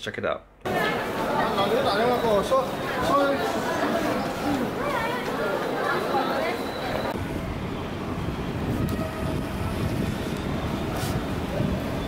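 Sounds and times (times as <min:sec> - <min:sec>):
low rumble of subway station: 0:00.7 - 0:12.0.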